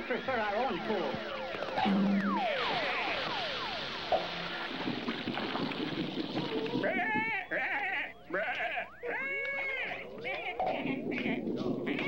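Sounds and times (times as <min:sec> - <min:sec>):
high-pitched cartoon voices: 0:06.3 - 0:12.0.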